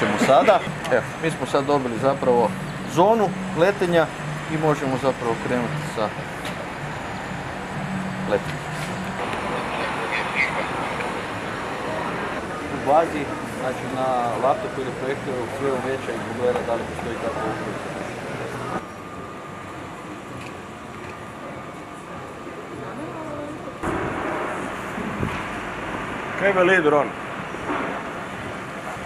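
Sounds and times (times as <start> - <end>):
drone rotors running: 0.0 - 22.8
faint voices: 0.0 - 23.8
street noise: 0.0 - 29.0.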